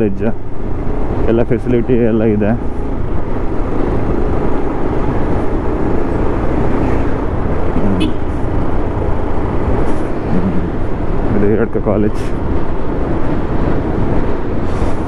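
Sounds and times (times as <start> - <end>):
road and wind noise: 0.0 - 15.0.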